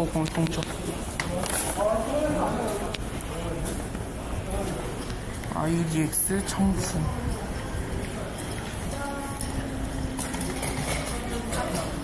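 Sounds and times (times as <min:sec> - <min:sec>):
steady humming tone: 0:00.0 - 0:12.0.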